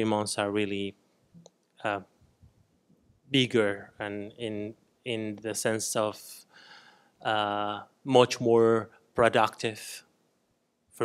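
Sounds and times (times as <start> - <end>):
man saying uh: 7.3 - 10.0.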